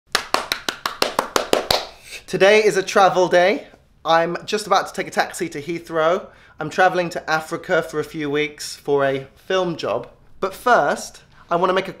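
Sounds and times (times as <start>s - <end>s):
man clapping hands rapidly: 0.1s - 2.0s.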